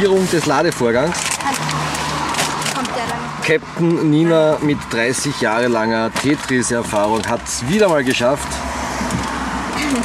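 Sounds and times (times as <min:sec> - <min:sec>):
paper and plastic sacks crinkling: 0:06.1 - 0:08.1
car passing: 0:07.0 - 0:10.0.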